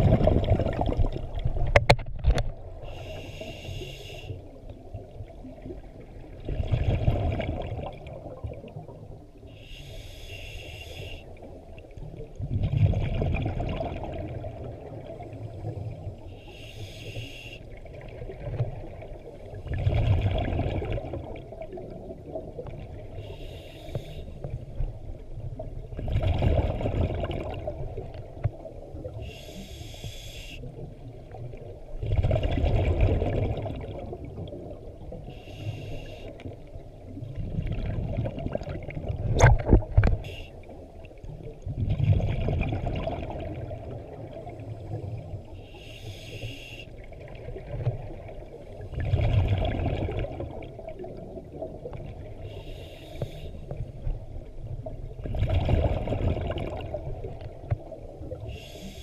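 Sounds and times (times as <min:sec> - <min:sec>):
exhaled bubbles burbling: 0:00.0 - 0:02.8, 0:04.9 - 0:09.1, 0:12.2 - 0:16.1, 0:17.8 - 0:23.1, 0:25.9 - 0:29.2, 0:31.3 - 0:35.2, 0:37.1 - 0:40.4, 0:41.4 - 0:45.5, 0:47.1 - 0:52.3, 0:54.8 - 0:58.5
regulator air hiss: 0:02.8 - 0:04.4, 0:09.5 - 0:11.3, 0:16.4 - 0:17.7, 0:23.2 - 0:24.4, 0:29.2 - 0:30.7, 0:35.3 - 0:36.4, 0:45.6 - 0:46.9, 0:52.4 - 0:53.6, 0:58.5 - 0:59.0.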